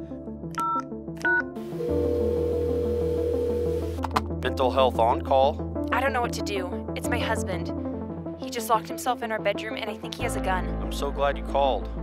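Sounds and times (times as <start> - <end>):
soft background music: 0.0 - 12.0
telephone keypad tones: 0.6 - 4.2
steady tone: 1.7 - 4.2.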